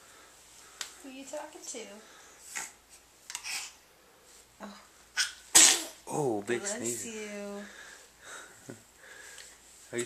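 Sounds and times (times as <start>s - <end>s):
baby sniffles and breaths: 2.2s - 4.5s
baby small sound: 2.5s - 3.8s, 5.1s - 6.3s.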